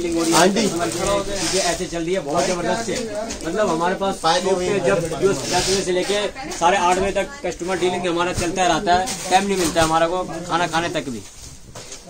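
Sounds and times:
voices chattering: 0.0s - 11.2s.

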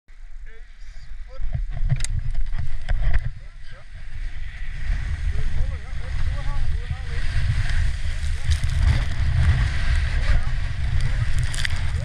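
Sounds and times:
sled rumble and knocking on snow: 0.5s - 12.0s.

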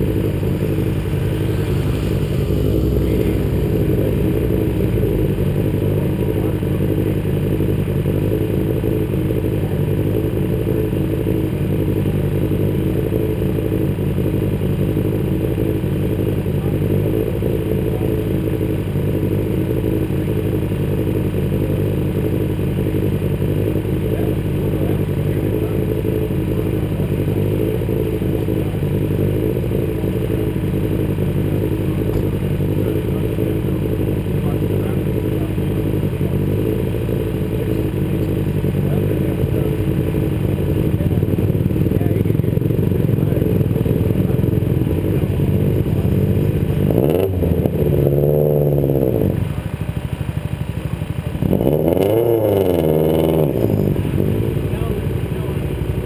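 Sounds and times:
engine revving: 0.0s - 49.7s, 51.3s - 56.0s
car engine idling: 0.0s - 56.0s.

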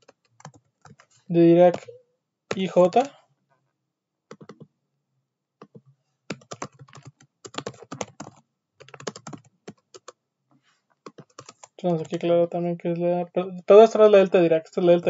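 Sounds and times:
computer keyboard typing: 0.0s - 3.1s, 4.3s - 4.7s, 5.6s - 10.2s, 11.0s - 12.3s.

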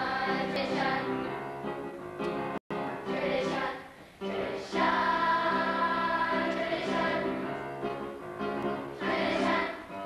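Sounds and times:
group singing slow song: 0.0s - 1.2s, 3.1s - 7.5s, 9.0s - 9.9s.

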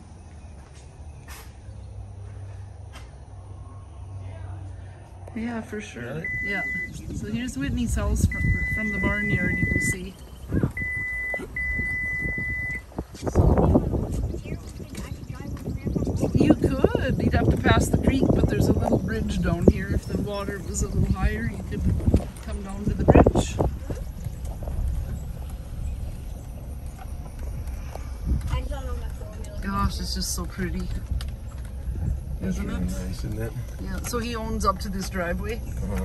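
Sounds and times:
low vehicle rumble: 0.0s - 36.0s
high electronic beep: 6.2s - 7.0s, 8.2s - 10.0s, 10.7s - 12.9s.

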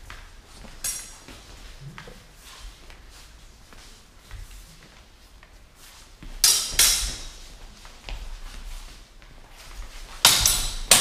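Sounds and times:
steel swords clashing: 0.8s - 1.2s, 6.4s - 7.4s, 10.2s - 11.0s.

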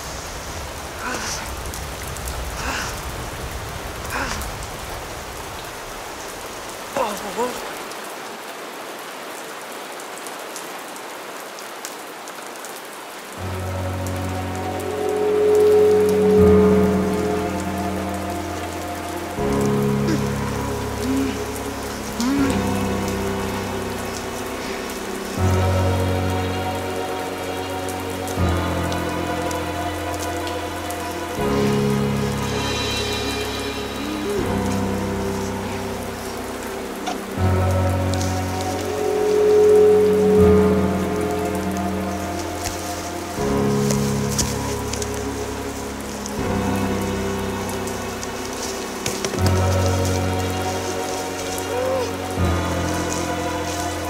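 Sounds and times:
rain falling on pavement: 0.0s - 54.0s
background music with sustained chords: 12.8s - 54.0s.

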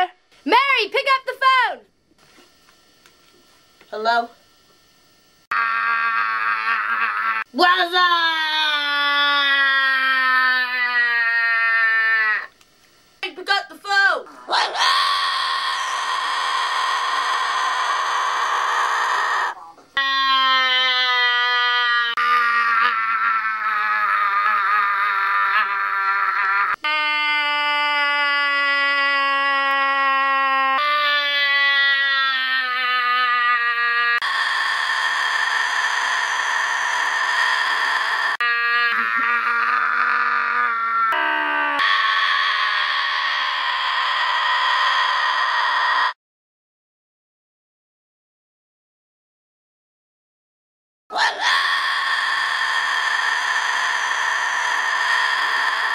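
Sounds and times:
parrot screeching: 14.5s - 27.4s, 30.7s - 46.2s, 51.1s - 55.9s.

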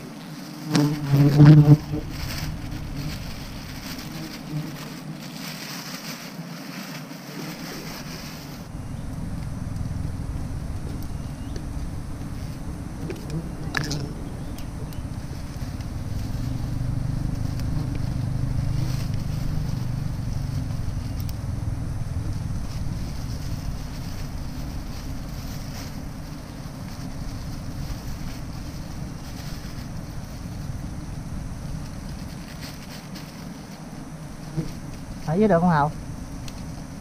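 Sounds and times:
bees buzzing: 0.0s - 5.5s, 6.3s - 32.2s, 32.8s - 37.0s
faint cutting ticks: 9.0s - 21.6s.

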